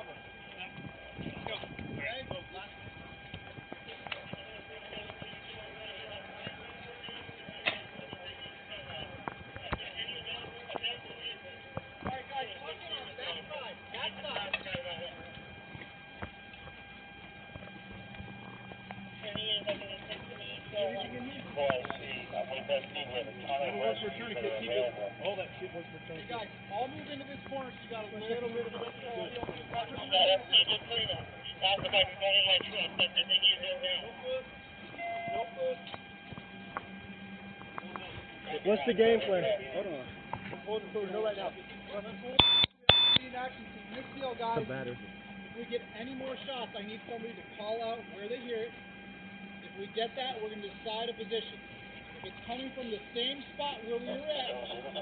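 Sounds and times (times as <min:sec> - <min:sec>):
people talking and calling out: 0:00.0 - 0:55.0
faint steady high tone: 0:33.0 - 0:40.0, 0:40.7 - 0:45.0.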